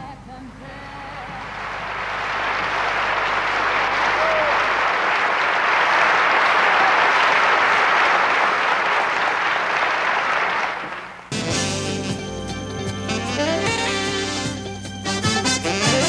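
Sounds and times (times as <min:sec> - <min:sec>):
audience applauding: 0:01.4 - 0:11.4.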